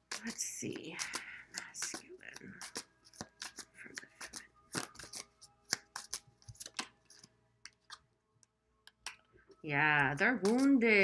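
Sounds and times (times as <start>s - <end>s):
cards being shuffled: 0.0s - 8.0s, 10.1s - 10.8s.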